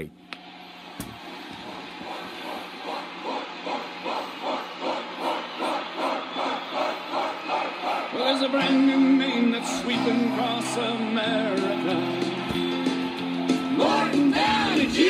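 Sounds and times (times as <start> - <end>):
crowd chanting on a record: 1.6 - 12.5, 13.6 - 15.0.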